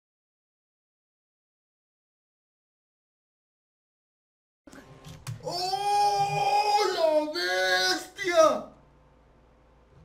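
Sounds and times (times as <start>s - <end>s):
man crying out in astonishment: 5.4s - 8.6s.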